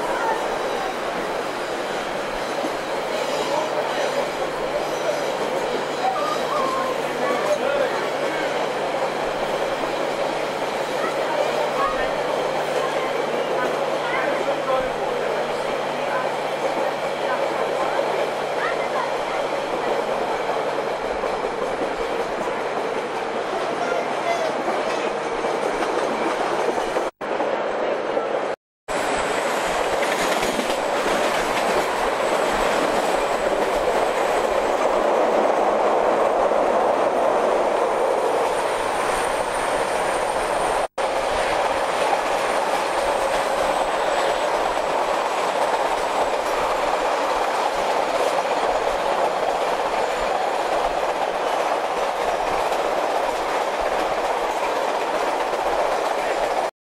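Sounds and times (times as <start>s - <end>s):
train wheels rumbling on rails: 0.0s - 27.6s, 28.9s - 56.7s.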